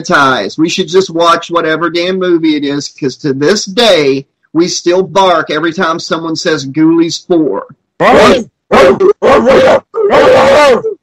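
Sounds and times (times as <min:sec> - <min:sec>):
men imitating dog barks: 0:08.0 - 0:11.0.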